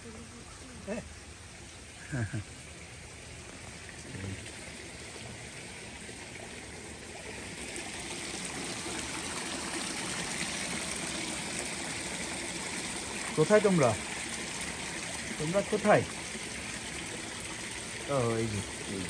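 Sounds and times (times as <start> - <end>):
water pouring into a pond: 1.2 - 19.0.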